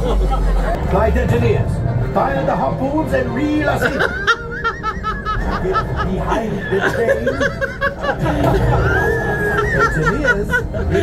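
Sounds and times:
people laughing: 0.0s - 1.2s, 3.6s - 11.0s
low rumble of ride soundtrack: 0.0s - 11.0s.

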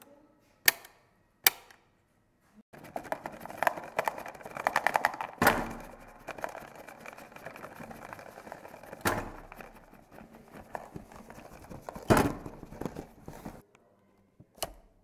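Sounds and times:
rapid mechanical clicking and rattling: 2.7s - 13.6s.

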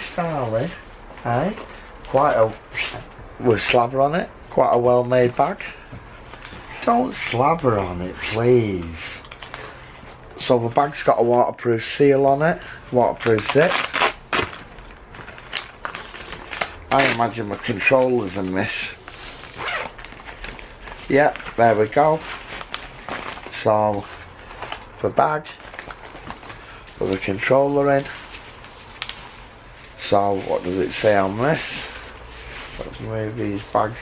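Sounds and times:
bag crinkling and rustling: 12.7s - 34.0s.

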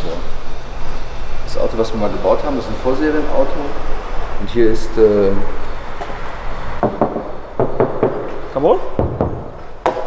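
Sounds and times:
steady low hum: 0.0s - 10.0s
short knocks: 6.8s - 10.0s.

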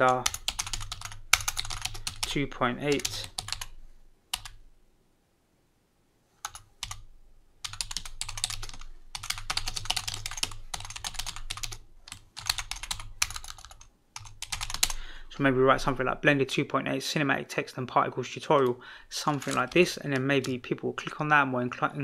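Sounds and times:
typing on computer keyboard: 0.0s - 3.7s, 4.4s - 4.6s, 6.4s - 7.0s, 7.6s - 15.0s, 19.3s - 21.3s.

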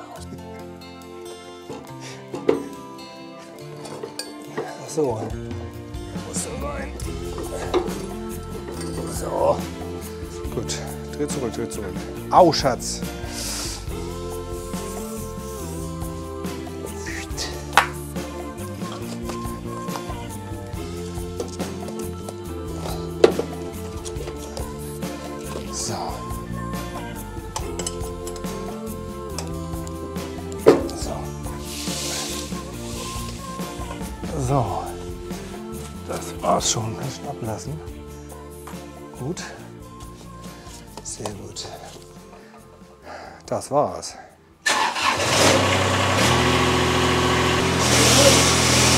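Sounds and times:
background music with held notes: 0.0s - 48.9s.

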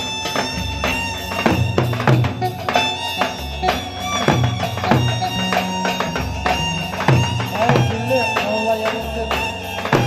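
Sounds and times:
drums beaten in dance rhythm: 0.0s - 10.0s
high held melody: 0.0s - 10.0s.

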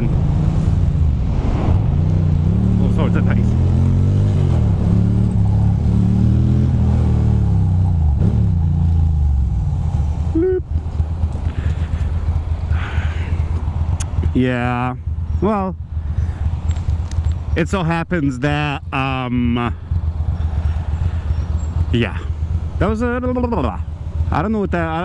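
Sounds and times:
motorcycle engine shifting gears: 0.0s - 14.4s, 15.0s - 17.6s, 19.7s - 24.4s.

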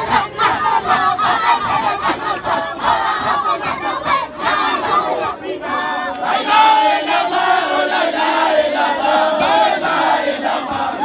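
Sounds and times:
men chanting together: 0.0s - 11.0s.

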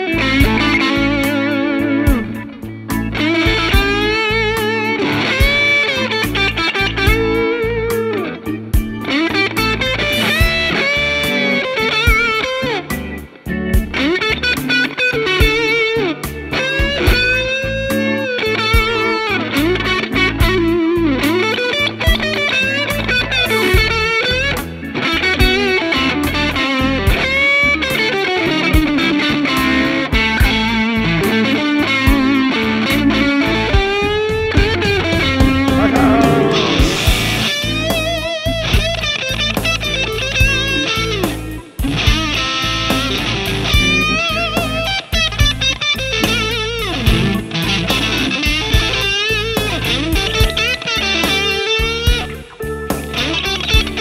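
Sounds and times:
backing track with steady beat: 0.0s - 54.0s
electric guitar lead with bends: 0.0s - 54.0s.

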